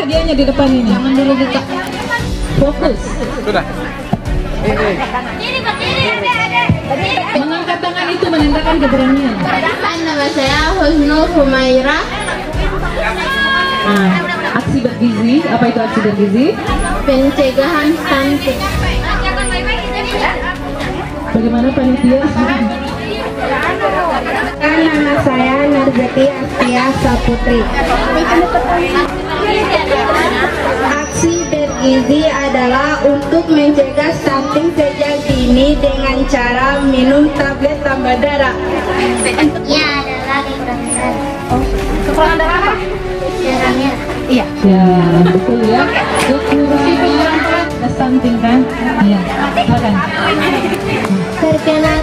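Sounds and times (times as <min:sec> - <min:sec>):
background music: 0:00.0 - 0:52.0
girls chattering: 0:00.0 - 0:52.0
group of people talking: 0:00.0 - 0:52.0.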